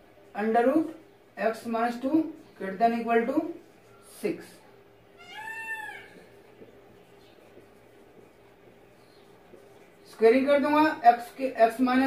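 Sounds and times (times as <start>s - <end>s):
short meow-like call: 5.2s - 6.2s.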